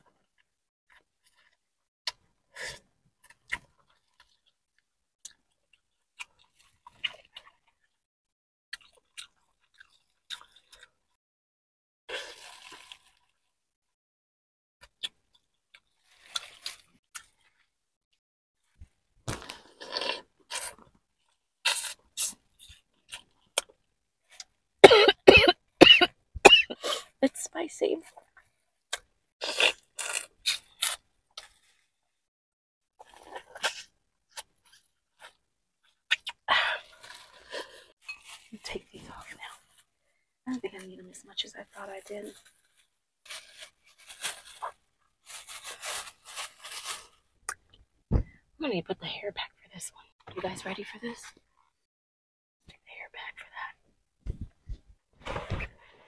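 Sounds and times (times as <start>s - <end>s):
person chewing and sucking seafood: 8.8s - 10.9s, 14.9s - 17.6s, 21.7s - 23.7s, 28.9s - 31.6s, 33.0s - 36.5s.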